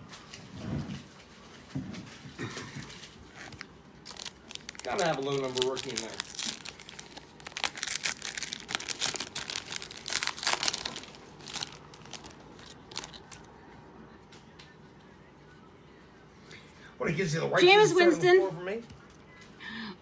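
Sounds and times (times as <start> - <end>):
card wrappers tearing and crinkling: 2.8 - 13.5.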